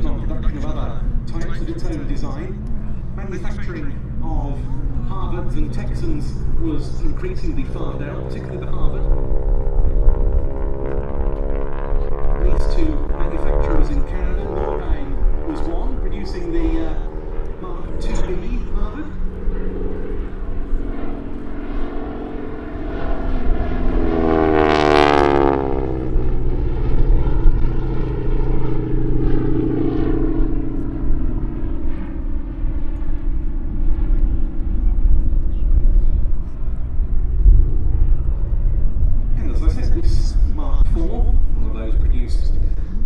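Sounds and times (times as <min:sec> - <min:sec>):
propeller plane engine passing: 0:00.0 - 0:43.0.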